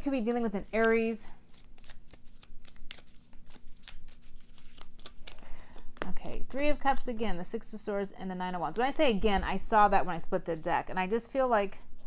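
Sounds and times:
cards shuffled and dealt: 0:00.7 - 0:07.2.

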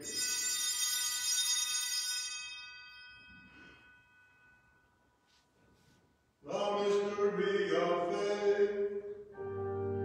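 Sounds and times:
altar bells ringing: 0:00.0 - 0:05.1.

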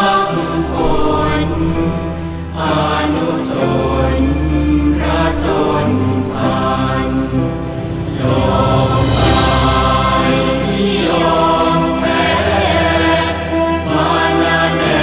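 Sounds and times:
devotional chant over music: 0:00.0 - 0:15.0.

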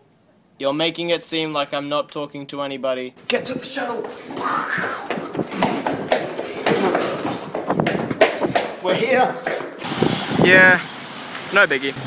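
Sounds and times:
hurried footsteps: 0:03.2 - 0:09.9.

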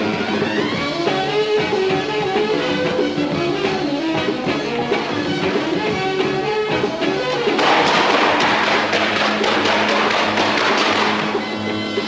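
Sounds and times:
fast percussion roll: 0:07.5 - 0:11.4.

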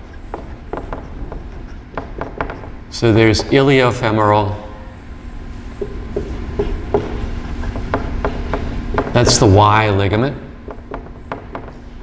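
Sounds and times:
marker squeaking on whiteboard: 0:00.0 - 0:03.6, 0:05.8 - 0:09.5.

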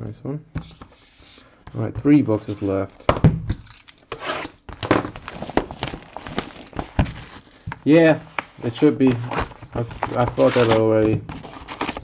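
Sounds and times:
wrapping crinkling and rustling: 0:04.8 - 0:12.0.

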